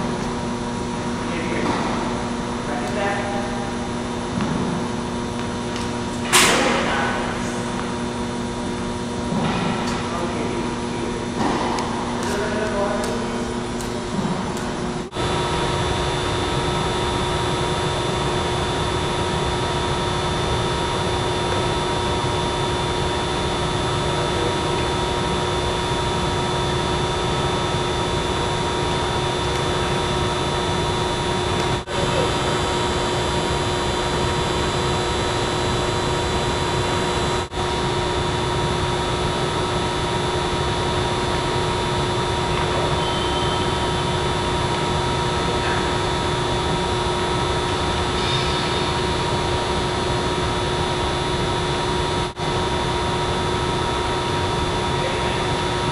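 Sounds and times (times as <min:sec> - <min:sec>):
steady mechanical drone: 0:00.0 - 0:55.9.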